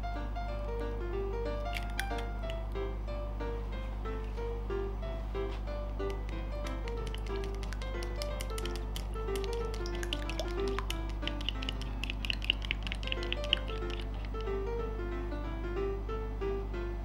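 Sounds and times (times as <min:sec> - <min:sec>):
chopsticks clicking against glass bowl: 0:01.7 - 0:02.6, 0:06.0 - 0:14.6.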